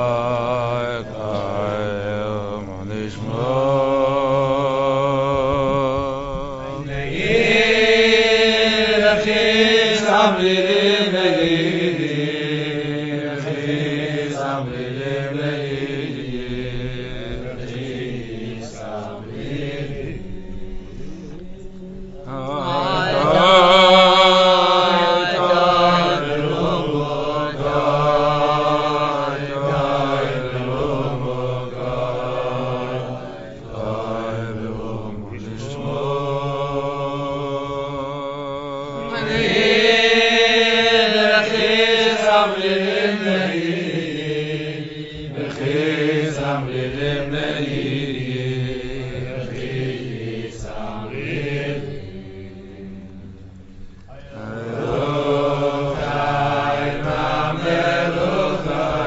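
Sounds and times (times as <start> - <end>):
voices singing wordless melody: 0.0 - 59.0.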